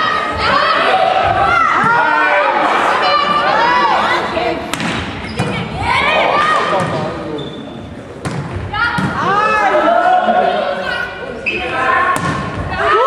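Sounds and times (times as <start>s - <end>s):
players shouting: 0.0s - 7.2s, 8.7s - 13.0s.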